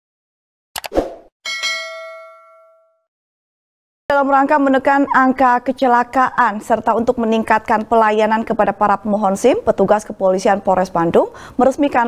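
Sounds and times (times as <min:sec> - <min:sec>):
notification bell chime: 0:01.5 - 0:03.0.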